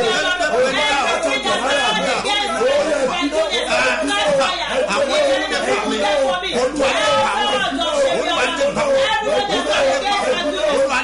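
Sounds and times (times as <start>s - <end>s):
voices praying aloud: 0.0s - 11.0s.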